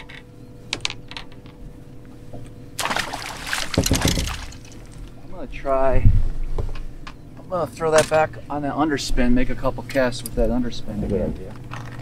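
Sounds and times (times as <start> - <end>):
fish splashing: 2.8 - 5.1
clicks and knocks on boat deck: 3.6 - 4.6.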